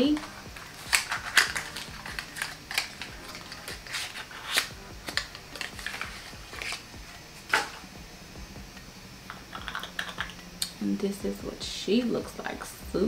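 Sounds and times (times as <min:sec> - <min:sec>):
packaging clicks and crackles: 0:00.0 - 0:06.9, 0:09.5 - 0:10.4.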